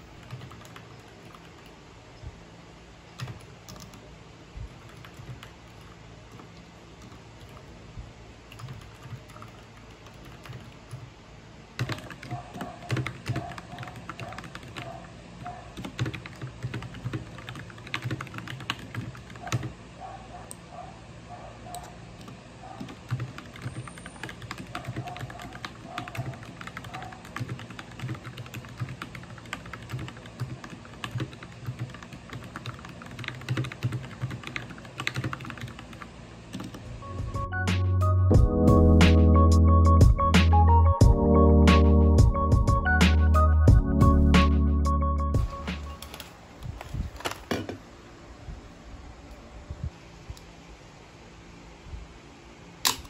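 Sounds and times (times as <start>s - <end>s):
mechanical keyboard typing: 0.0s - 1.8s, 3.2s - 4.0s, 4.7s - 7.7s, 8.5s - 11.1s, 11.8s - 15.0s, 15.8s - 19.8s, 21.7s - 36.9s, 45.5s - 47.7s.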